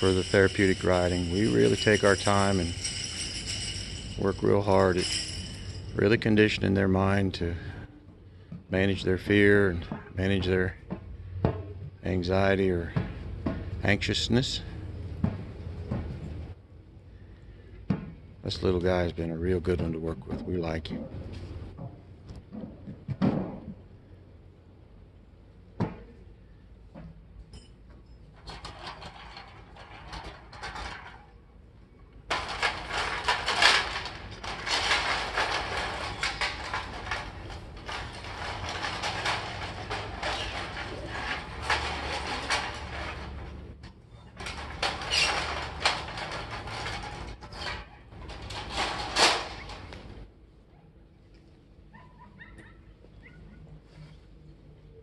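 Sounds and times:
rustling and crackling object: 0:28.3 - 0:50.3.

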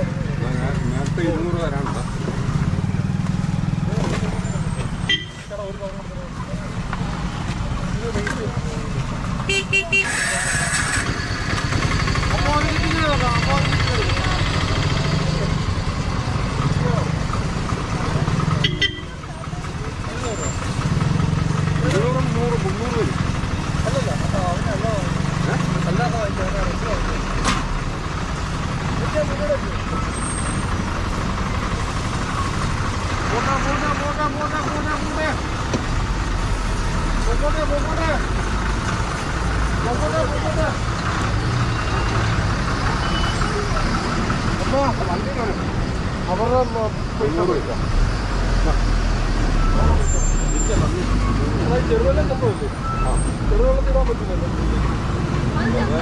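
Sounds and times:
people talking: 0:00.0 - 0:02.4, 0:12.1 - 0:20.6, 0:21.7 - 0:27.4, 0:28.9 - 0:30.2, 0:43.1 - 0:47.9, 0:49.6 - 0:56.0
heavy truck rumbling: 0:00.0 - 0:56.0
road traffic rumble: 0:00.0 - 0:56.0.

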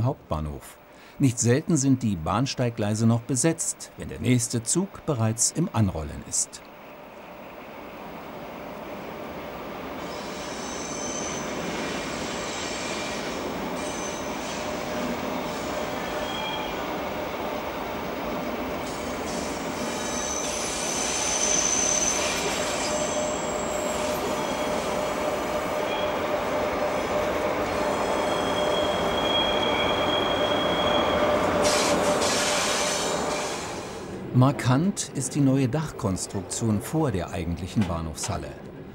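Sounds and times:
train rumbling: 0:01.3 - 0:38.9
wheels squealing: 0:19.3 - 0:33.6.

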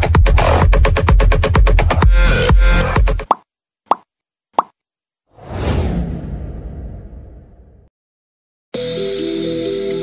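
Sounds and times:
pitched plop sound effects: 0:03.2 - 0:04.8.

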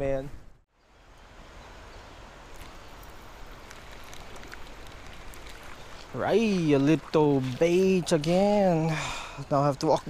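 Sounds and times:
creek hiss: 0:00.8 - 0:10.0
faint clicks: 0:02.5 - 0:06.1.

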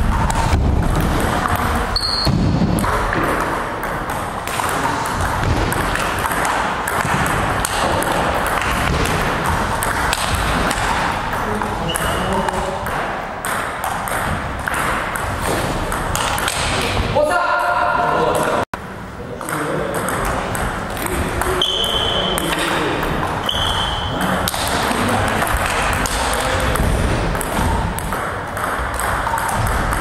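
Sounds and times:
table tennis balls clicking: 0:00.0 - 0:17.0, 0:19.4 - 0:30.0
person speaking: 0:16.8 - 0:18.6.

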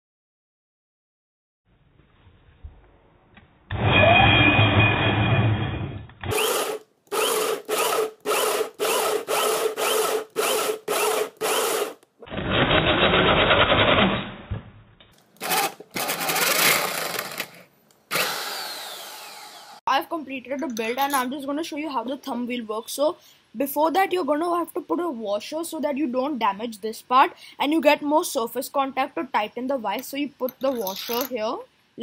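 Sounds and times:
power drill cutting through wood: 0:06.2 - 0:13.9, 0:18.1 - 0:19.8.

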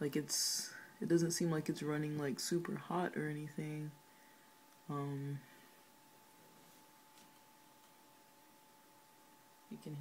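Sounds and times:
laptop cooling fans whirring: 0:00.0 - 0:10.0.

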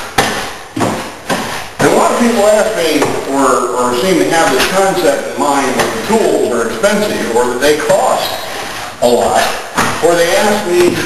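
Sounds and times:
sharp knocks: 0:00.0 - 0:03.4, 0:04.3 - 0:06.6, 0:09.3 - 0:11.0.

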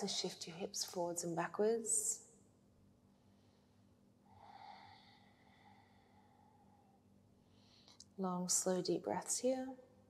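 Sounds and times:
faint breath: 0:03.2 - 0:08.0.

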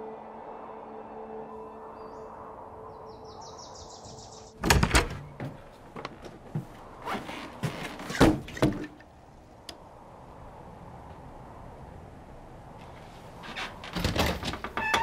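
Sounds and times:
low steady drone: 0:00.0 - 0:04.6.

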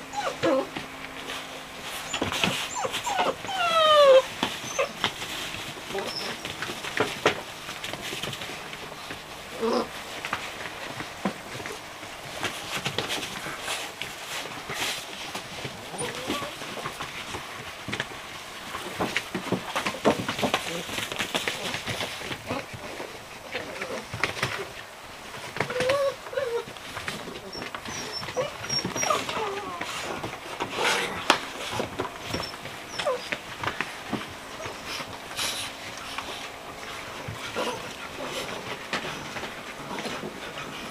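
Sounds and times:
puppy growl: 0:00.0 - 0:07.3, 0:09.0 - 0:10.2, 0:15.6 - 0:17.0, 0:19.8 - 0:24.8, 0:25.4 - 0:40.9
puppies scuffling: 0:00.0 - 0:40.9.

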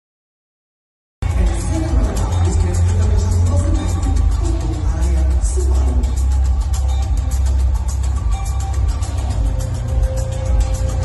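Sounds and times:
loud music with heavy bass: 0:01.2 - 0:11.0.

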